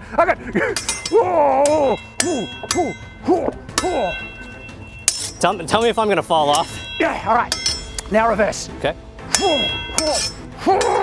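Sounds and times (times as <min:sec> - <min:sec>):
swords clashing and ringing: 0:00.7 - 0:08.2, 0:09.3 - 0:11.0.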